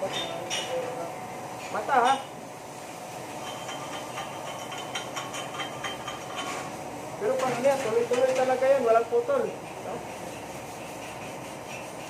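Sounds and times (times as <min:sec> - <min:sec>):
welding arc crackling hiss: 0:01.5 - 0:12.0.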